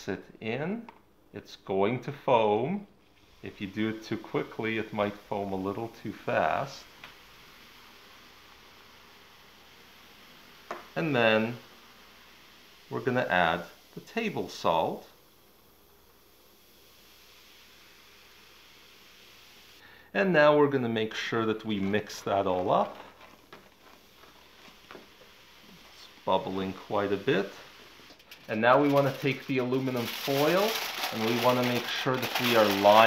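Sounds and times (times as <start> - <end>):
fizzing hiss of foaming liquid: 3.0 - 33.0
spoon stirring in plastic jug: 21.8 - 25.1.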